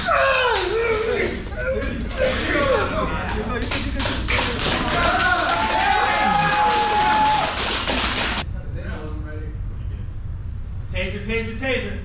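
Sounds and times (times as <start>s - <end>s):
people shouting: 0.0s - 3.0s, 4.8s - 7.6s
people laughing: 0.6s - 7.4s.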